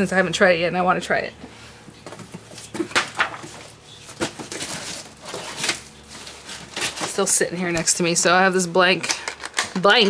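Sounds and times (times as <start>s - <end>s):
craft supplies rustling and clacking: 2.1s - 7.4s.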